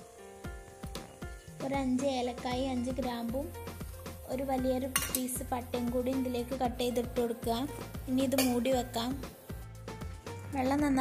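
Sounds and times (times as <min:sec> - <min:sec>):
metal bowl and spoon clinking: 0:04.9 - 0:05.4, 0:08.4 - 0:08.6.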